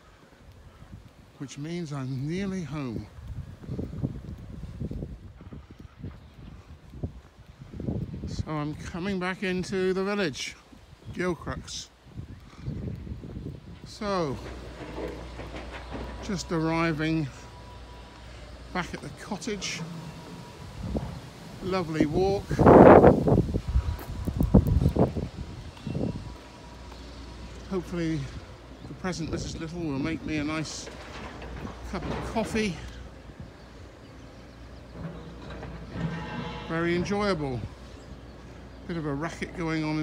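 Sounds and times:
wind buffeting microphone: 0:02.1 - 0:10.1, 0:10.8 - 0:40.0
footsteps on tarmac: 0:12.3 - 0:36.7.

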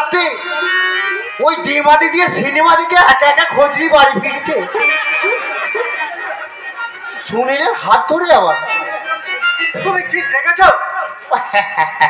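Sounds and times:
murmur of voices: 0:00.2 - 0:11.8
thin high tone: 0:04.4 - 0:09.8.

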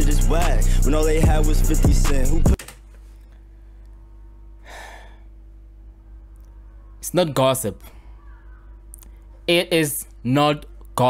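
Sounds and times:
low steady hum: 0:02.7 - 0:11.0.

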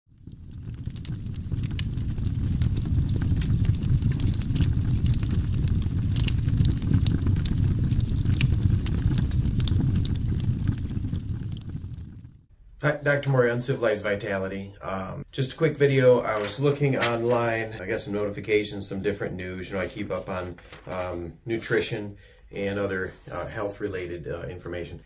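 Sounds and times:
dense crackling: 0:00.1 - 0:24.4
steady low rumble: 0:00.2 - 0:12.5.

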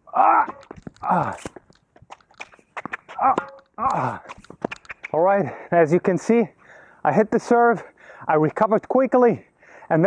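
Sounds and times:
person grunting with effort: 0:00.0 - 0:01.6, 0:03.2 - 0:04.3
quick footsteps on hard court: 0:00.4 - 0:05.2
shoe scuffs on hard court: 0:00.5 - 0:05.2.

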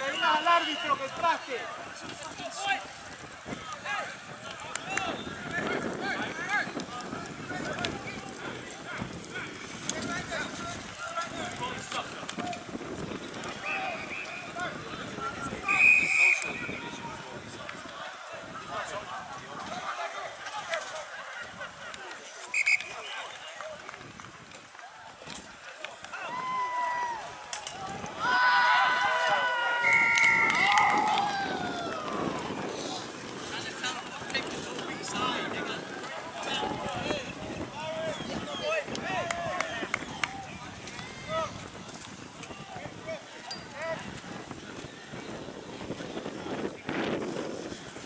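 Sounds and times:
players and onlookers calling out: 0:00.0 - 0:44.2
open-air background noise: 0:00.0 - 0:48.0
referee's whistle blasts: 0:15.6 - 0:16.8, 0:22.5 - 0:23.2
people shouting: 0:26.1 - 0:32.6.

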